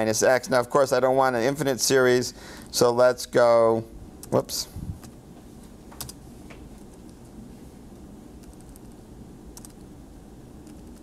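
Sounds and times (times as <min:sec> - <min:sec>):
low room hum: 0:00.0 - 0:11.0
keyboard keystrokes: 0:06.0 - 0:06.2, 0:09.6 - 0:09.8.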